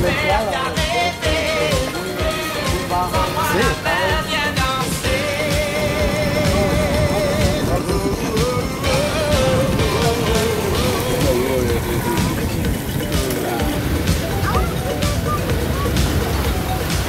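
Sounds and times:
person singing: 0.0 - 13.7
outboard motors running: 0.0 - 17.0.

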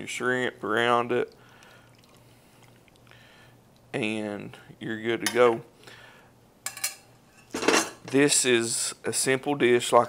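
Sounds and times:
metal spoon clinking on skillet: 6.6 - 8.0
skillet clattering down: 6.7 - 8.2.

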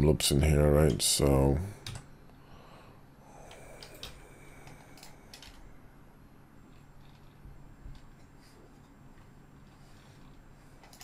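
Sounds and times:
low steady hum: 0.0 - 11.0
computer keyboard and mouse clicks: 1.8 - 2.1, 3.5 - 5.6.

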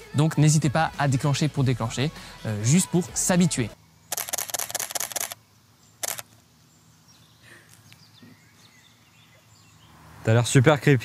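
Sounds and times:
camera shutter burst: 4.1 - 5.4, 6.0 - 6.4
faint bird chirps: 5.3 - 10.0.

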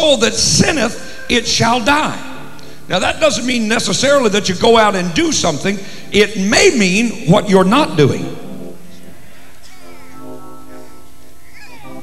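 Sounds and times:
sustained organ-like keyboard chords: 0.0 - 12.0.

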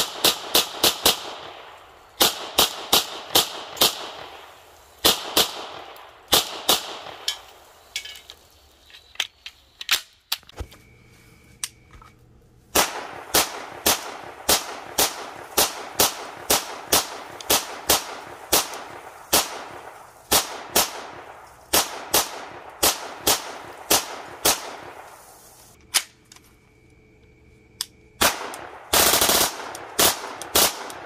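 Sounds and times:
gunshots echoing: 0.0 - 7.8, 12.8 - 25.1, 28.2 - 31.0.

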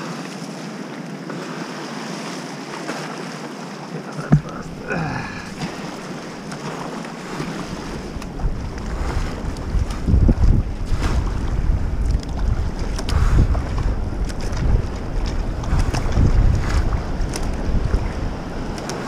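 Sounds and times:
rushing whitewater: 0.0 - 10.9, 15.4 - 19.0
paddle splashes: 0.0 - 19.0
wind buffeting microphone: 4.2 - 19.0.

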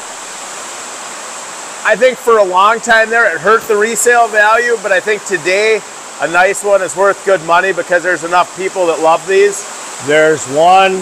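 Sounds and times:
rain on a steel roof: 0.0 - 11.0
man's voice: 1.8 - 11.0.

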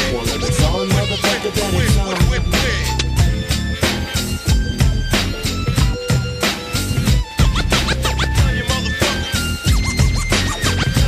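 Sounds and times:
hip hop drum beat: 0.0 - 11.0
turntable scratching: 0.0 - 11.0.

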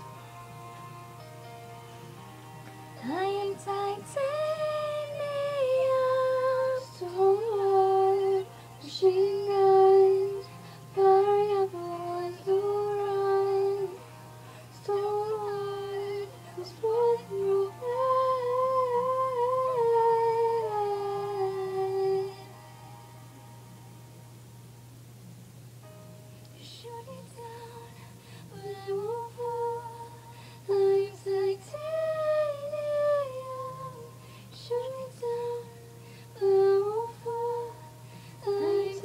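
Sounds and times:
woman singing unaccompanied: 2.9 - 22.6, 26.6 - 39.0.

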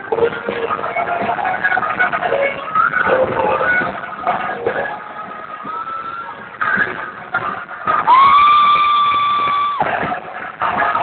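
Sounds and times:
live concert sound: 0.0 - 11.0.

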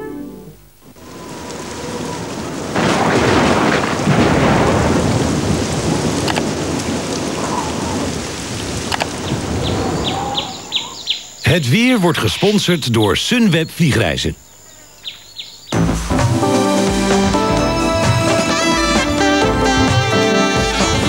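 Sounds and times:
steady rain: 0.7 - 21.0
thunder cracks: 1.3 - 11.0.

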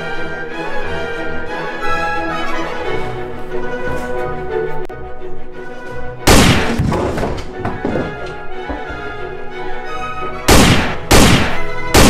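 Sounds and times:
background music: 0.0 - 12.0
loud gunshot bang: 6.3 - 7.2, 10.5 - 12.0.

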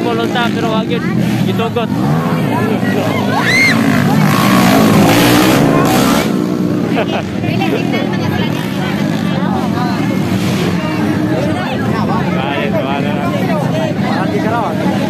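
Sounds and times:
crowd talking and shouting: 0.0 - 15.0
motorcycle engines racing: 0.0 - 15.0.

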